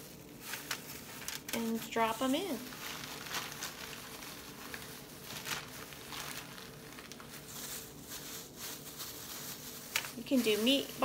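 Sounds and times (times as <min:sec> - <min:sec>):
faint steady hum: 0:00.0 - 0:11.0
plastic gloves rustling: 0:00.0 - 0:11.0.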